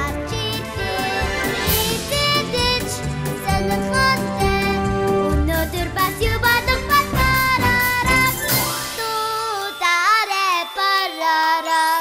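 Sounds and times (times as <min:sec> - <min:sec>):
light music: 0:00.0 - 0:12.0
child-like voice singing: 0:09.0 - 0:12.0.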